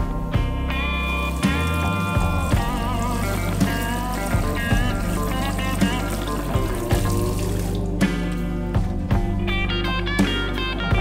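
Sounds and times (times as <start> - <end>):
background music: 0.0 - 11.0
tap water running: 0.5 - 8.4.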